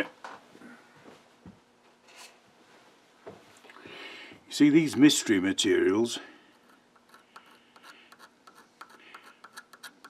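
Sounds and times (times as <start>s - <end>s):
steel scriber scratching metal: 6.6s - 10.0s.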